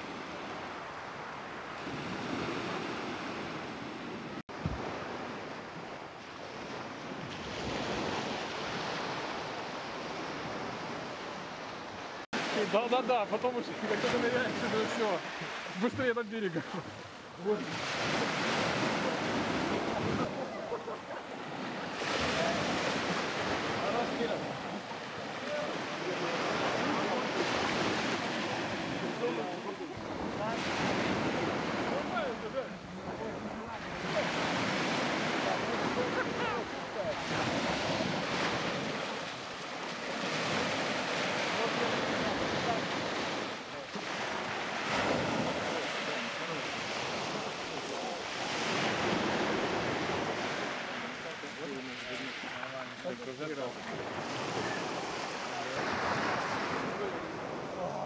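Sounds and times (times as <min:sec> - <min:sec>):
sea waves washing: 0:00.0 - 0:58.0.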